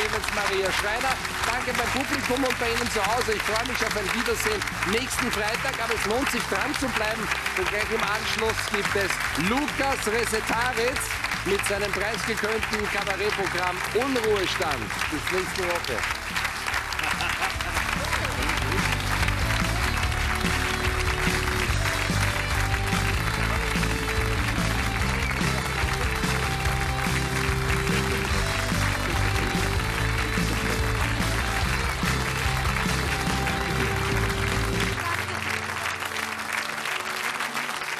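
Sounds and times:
audience applauding: 0.0s - 37.9s
theme music: 0.0s - 37.9s.

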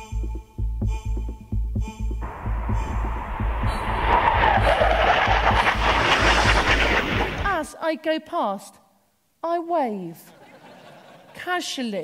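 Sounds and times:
fast jet roaring: 2.2s - 7.7s.

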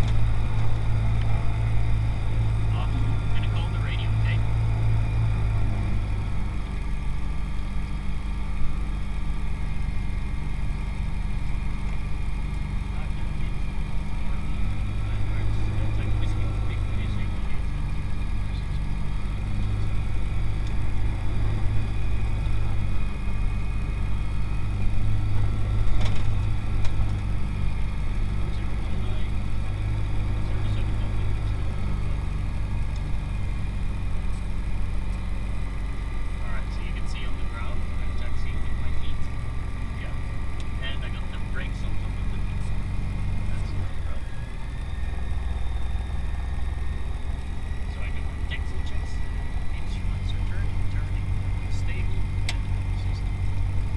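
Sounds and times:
aircraft engine droning in cabin: 0.0s - 53.9s.

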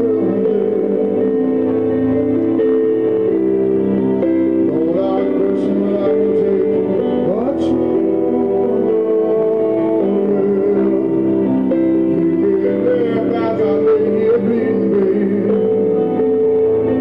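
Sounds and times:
keyboard playing slow piano chords: 0.0s - 17.0s.

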